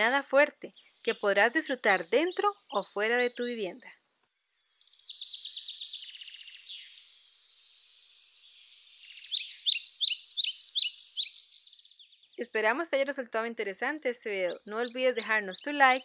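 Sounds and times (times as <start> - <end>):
high bird chirps: 0.0 - 16.0
bird trilling: 4.5 - 12.4, 14.5 - 16.0.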